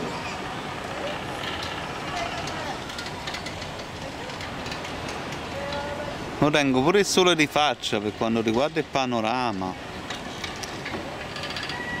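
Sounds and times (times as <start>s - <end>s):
steady mechanical winch noise: 0.0s - 12.0s
light clicks and rattles: 1.1s - 6.0s, 7.9s - 12.0s.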